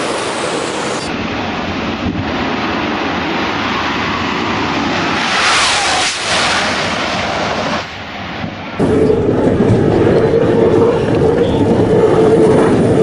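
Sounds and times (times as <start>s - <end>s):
jet dragsters roaring past: 0.0s - 13.0s.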